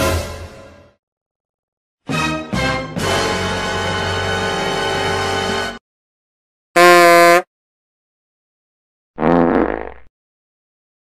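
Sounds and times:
fart sound effect: 6.8s - 7.5s, 9.2s - 10.1s.

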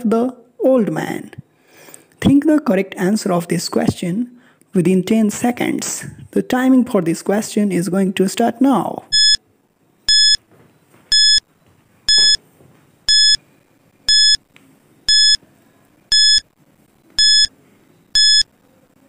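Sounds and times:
short electronic beeps: 9.1s - 9.4s, 10.1s - 10.4s, 11.1s - 11.4s, 12.1s - 12.4s, 13.1s - 13.4s, 14.1s - 14.4s, 15.1s - 15.4s, 16.1s - 16.4s, 17.2s - 17.5s, 18.2s - 18.5s.

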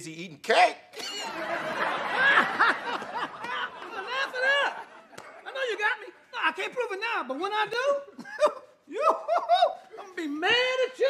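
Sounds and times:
audience laughter: 1.0s - 5.8s.

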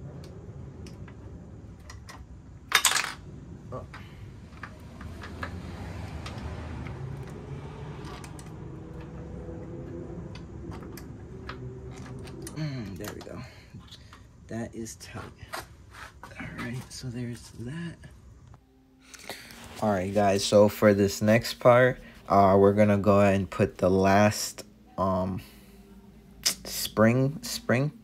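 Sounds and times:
low background hum: 0.0s - 28.0s.

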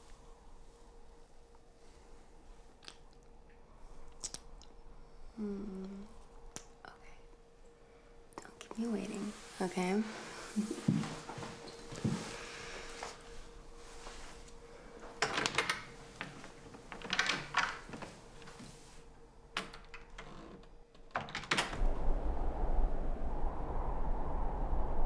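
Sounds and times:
faint steady hum: 0.0s - 25.0s
low rumbling drone: 21.8s - 25.0s.

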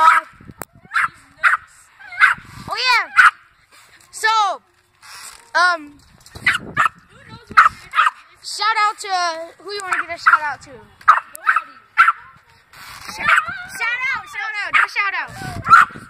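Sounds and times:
small dog barking: 0.9s - 2.4s, 11.1s - 12.2s, 14.7s - 14.9s, 15.7s - 16.0s.

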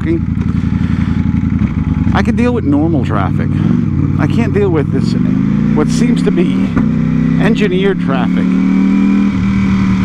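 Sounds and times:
motorcycle engine idling: 0.0s - 8.2s.

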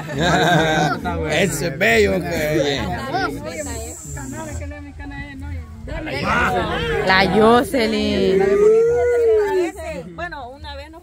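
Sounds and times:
people talking quietly: 0.0s - 11.0s
high-pitched hiss: 2.5s - 5.9s.

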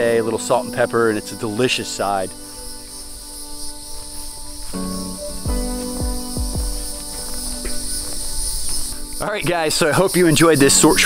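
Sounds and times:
background music: 0.0s - 11.0s
high-pitched insect chorus: 0.0s - 11.0s
deep bass drum hits: 5.5s - 6.9s.

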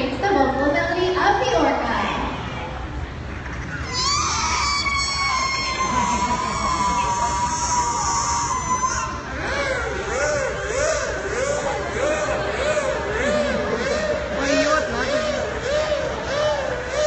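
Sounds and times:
killer whale calling: 3.6s - 17.0s.

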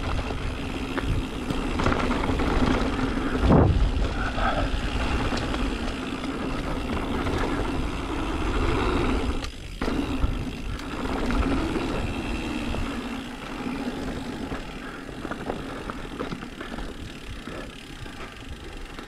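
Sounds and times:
wind rush over microphone: 2.2s - 5.5s.

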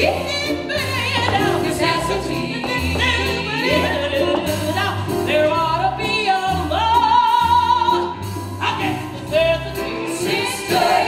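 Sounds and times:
jazz ensemble and orchestra: 0.0s - 11.0s
woman singing: 0.0s - 11.0s.

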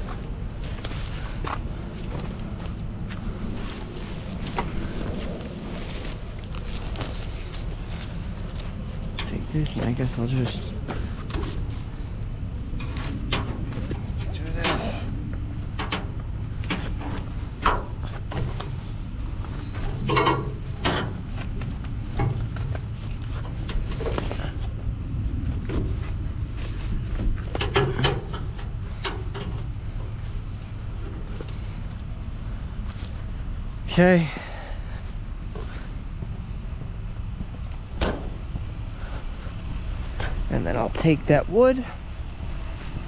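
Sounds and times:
truck engine idling: 0.0s - 43.0s
knocks and clatter of handling: 12.7s - 24.8s, 25.6s - 32.0s.

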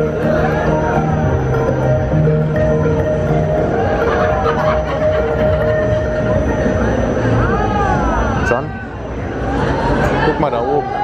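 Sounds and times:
crowd chatter: 0.0s - 11.0s
ride machinery noise: 0.0s - 11.0s.

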